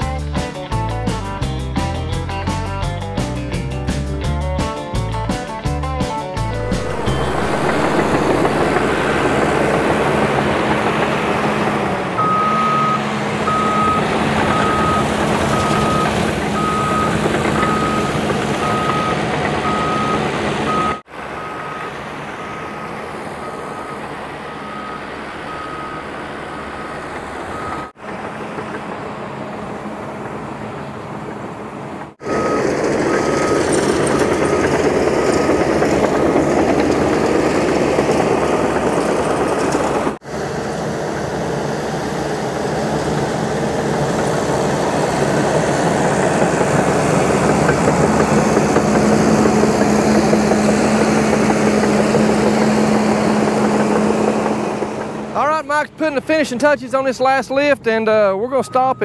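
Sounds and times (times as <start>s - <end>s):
diesel engine running under load: 6.4s - 57.9s
backup alarm beeping: 6.5s - 10.7s, 12.2s - 28.0s, 58.5s - 59.0s.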